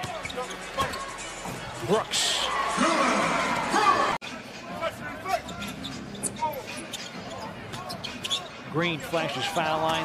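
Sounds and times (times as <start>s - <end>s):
shoe squeaks: 5.3s - 8.6s.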